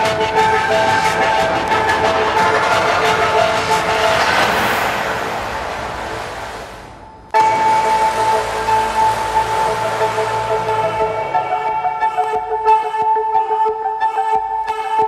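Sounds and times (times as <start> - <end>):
rush of noise: 0.0 - 12.5
music of long held notes: 0.0 - 15.0.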